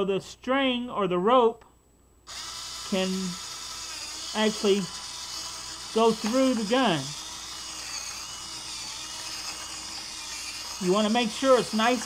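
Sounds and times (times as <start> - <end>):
electric drill boring plastic: 2.3 - 12.0.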